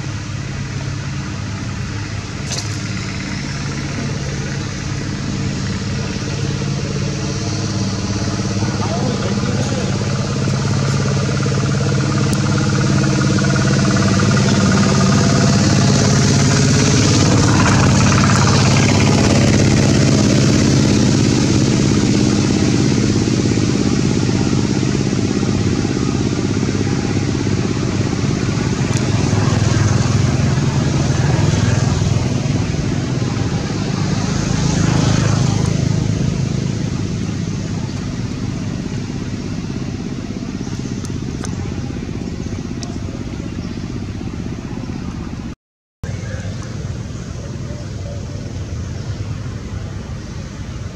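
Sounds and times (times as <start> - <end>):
passing traffic: 0.0 - 50.9
vehicle engine running: 0.0 - 50.9.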